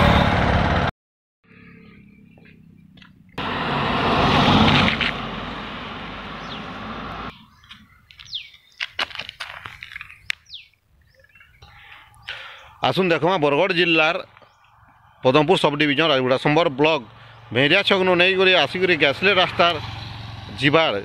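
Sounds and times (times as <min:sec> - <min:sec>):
birds chirping: 0:01.5 - 0:03.4, 0:06.1 - 0:20.4.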